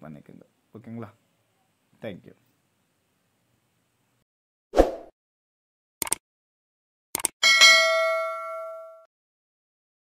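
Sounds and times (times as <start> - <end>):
bright bell ding: 7.4 - 9.1.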